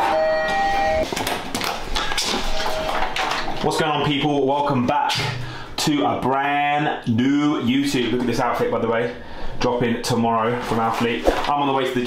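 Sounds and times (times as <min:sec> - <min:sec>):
lift arrival chime: 0:00.0 - 0:01.1.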